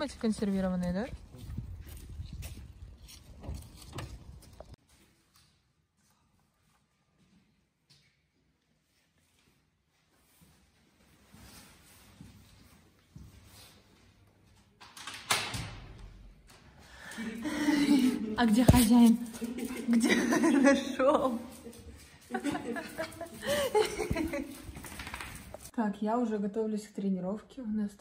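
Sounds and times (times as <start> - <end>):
wind rumble on microphone: 0.8 - 4.7.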